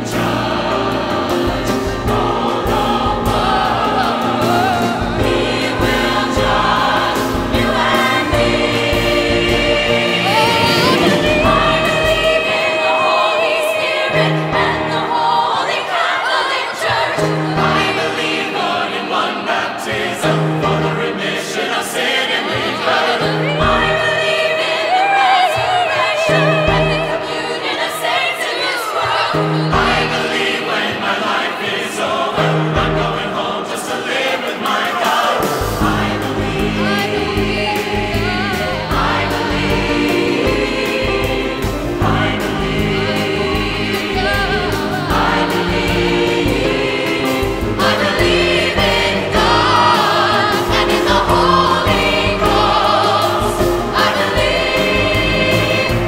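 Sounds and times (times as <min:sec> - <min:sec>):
gospel choir singing: 0:00.0 - 0:56.0
piano: 0:00.0 - 0:56.0.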